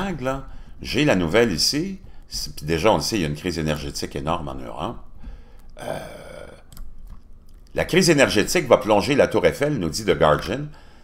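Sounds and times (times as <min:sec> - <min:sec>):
man's throaty noise: 0:05.8 - 0:06.7.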